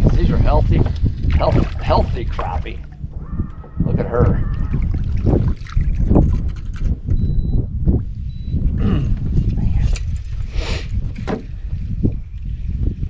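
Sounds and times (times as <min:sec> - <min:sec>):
wind and water rumble on microphone: 0:00.0 - 0:13.0.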